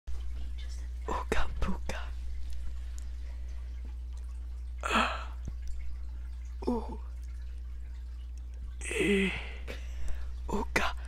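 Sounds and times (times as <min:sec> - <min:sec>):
steady low hum: 0:00.1 - 0:11.0
person whispering: 0:01.0 - 0:02.2, 0:10.5 - 0:11.0.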